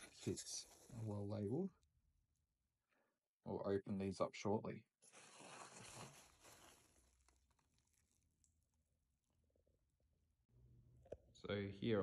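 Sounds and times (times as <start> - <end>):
bubble wrap crinkling: 5.0 - 9.0.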